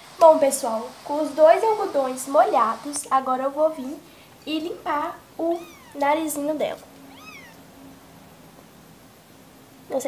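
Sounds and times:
kitten mewing: 0:05.5 - 0:06.0, 0:07.1 - 0:07.6.

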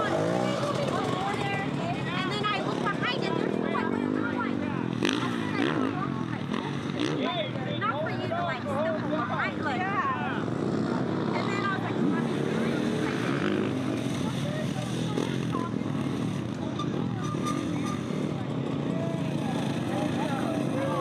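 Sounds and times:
dirt bike engines passing: 0:00.0 - 0:21.0
indistinct voices: 0:00.0 - 0:21.0.

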